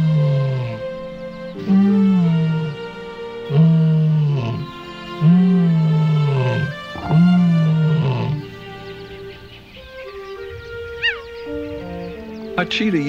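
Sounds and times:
lion roaring: 0.0 - 1.0, 1.6 - 8.6
background music: 0.0 - 13.0.

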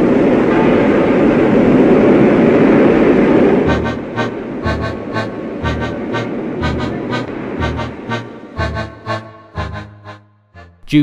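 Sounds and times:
rough sea water rushing: 0.0 - 8.4
music with a beat: 3.7 - 10.7.

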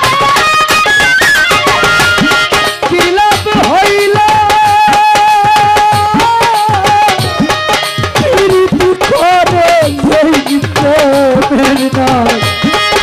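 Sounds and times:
violin folk melody: 0.0 - 4.0, 11.5 - 13.0
hand drum steady beat: 0.0 - 13.0.

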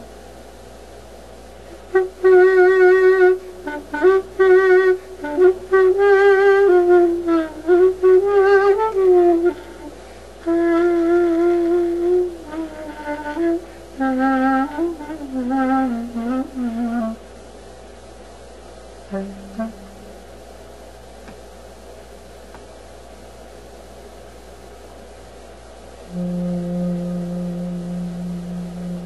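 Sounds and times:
clarinet melody with vibrato: 1.8 - 17.2, 19.1 - 20.2, 26.1 - 29.0.

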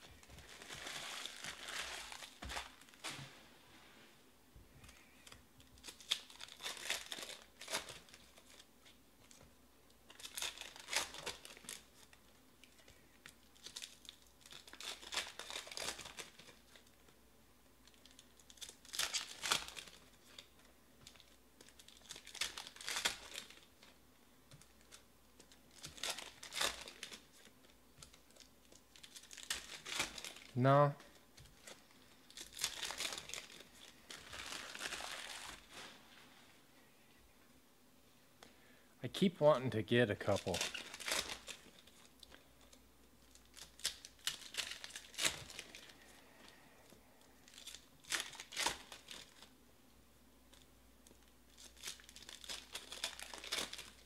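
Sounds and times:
foil wrappers tearing and crinkling: 0.0 - 3.2, 4.9 - 8.7, 10.1 - 17.0, 17.8 - 23.9, 24.6 - 35.9, 40.2 - 46.6, 47.3 - 49.5, 50.5 - 54.0.

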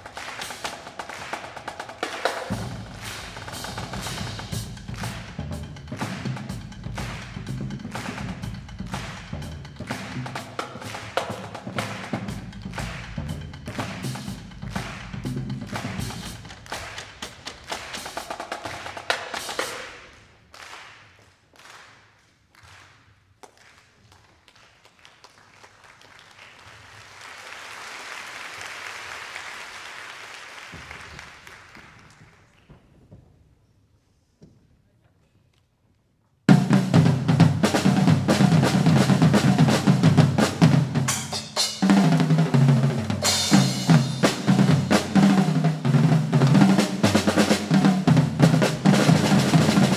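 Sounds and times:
audience applause: 0.0 - 5.3, 6.0 - 19.7, 22.6 - 32.7
fast percussion ensemble music: 0.0 - 20.9, 36.5 - 49.9.

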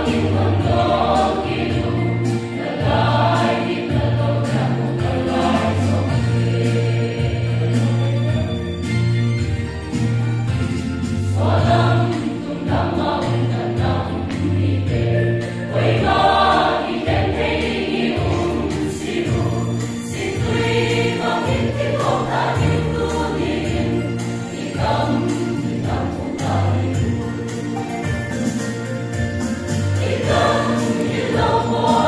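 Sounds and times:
mixed choir singing a hymn: 0.0 - 8.8, 10.4 - 28.6, 29.4 - 32.0.

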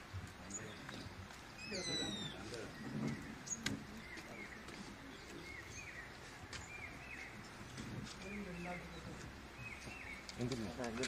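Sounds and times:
faint indistinct voices: 0.4 - 11.0
bird whistled call: 1.6 - 2.5.

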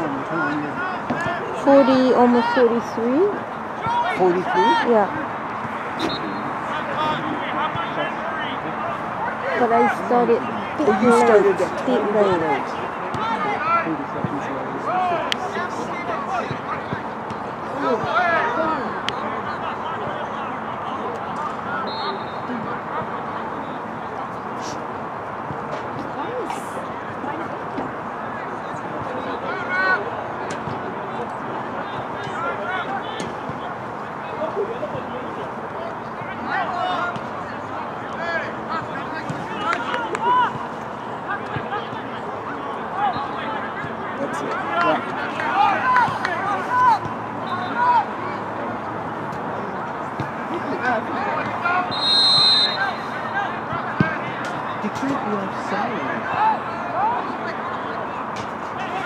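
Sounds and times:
distant players shouting: 0.2 - 23.8, 24.7 - 59.0
referee's whistle: 6.0 - 7.2, 21.8 - 22.6, 47.4 - 47.9, 51.8 - 53.4.

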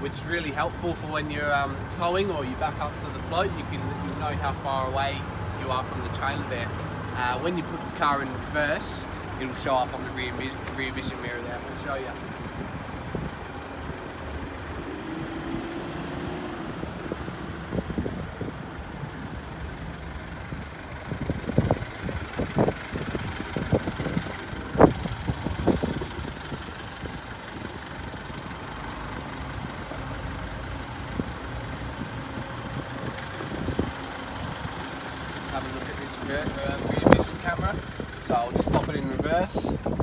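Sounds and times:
diesel engine idling: 0.0 - 40.0.

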